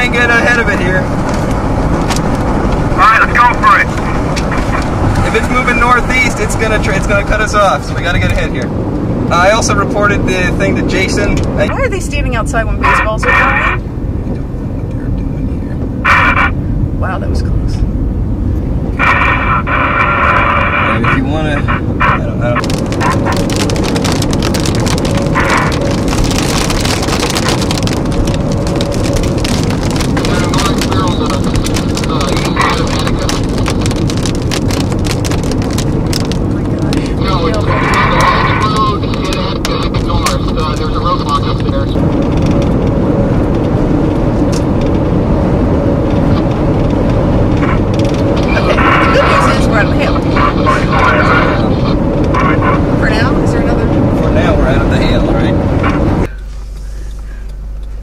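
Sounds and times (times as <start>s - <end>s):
rapid ticking and crackling: 0.0s - 16.6s, 18.9s - 58.0s
wind and car rumble inside car: 0.0s - 58.0s
muffled voices: 2.8s - 8.7s, 9.3s - 13.8s, 19.0s - 24.6s, 30.1s - 33.9s, 35.7s - 42.0s, 48.4s - 56.5s.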